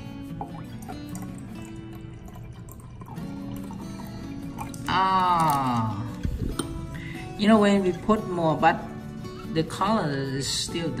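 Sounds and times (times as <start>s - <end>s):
liquid trickling into a glass: 0.0s - 10.7s
background music: 0.0s - 11.0s.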